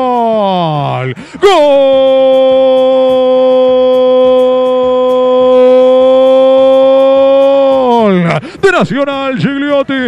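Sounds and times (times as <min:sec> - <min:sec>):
commentator shouting goal: 0:00.0 - 0:10.0.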